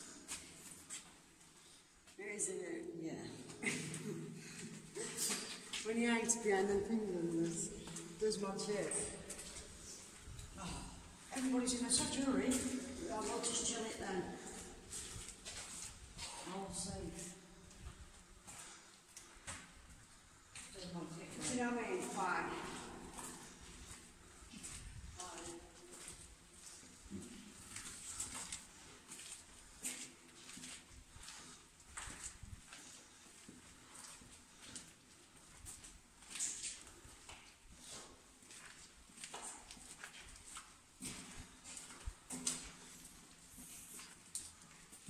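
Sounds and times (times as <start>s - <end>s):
footsteps in tunnel: 0.0s - 45.0s.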